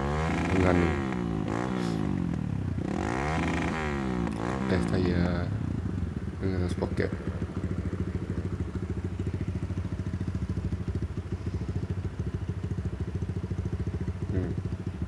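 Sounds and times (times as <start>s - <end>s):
motorcycle engine idling: 0.0s - 15.0s.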